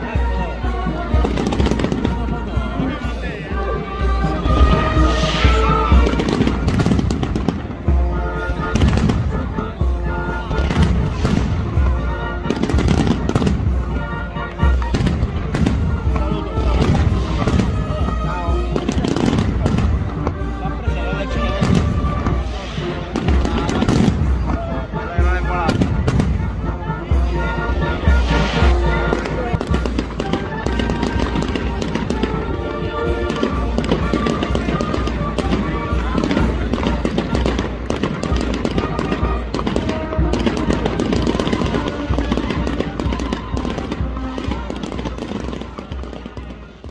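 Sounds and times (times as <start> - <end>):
band music: 0.0 - 46.9
firecrackers crackling and banging: 0.0 - 46.9.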